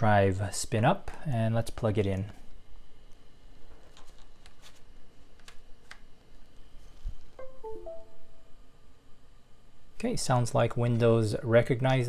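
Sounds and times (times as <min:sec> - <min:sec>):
device-connect chime: 0:07.4 - 0:08.6.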